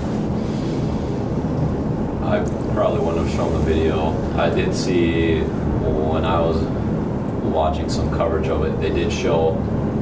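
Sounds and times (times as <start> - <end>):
steady low rumbling: 0.0 - 10.0.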